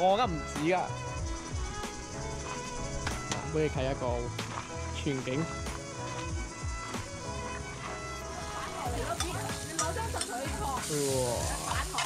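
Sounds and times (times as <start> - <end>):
background music: 0.0 - 12.0
onions sizzling in a wok: 8.3 - 12.0.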